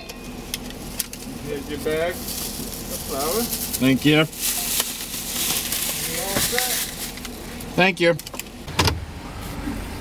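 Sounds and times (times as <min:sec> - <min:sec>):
paper bag rustling and crinkling: 0:01.1 - 0:07.4.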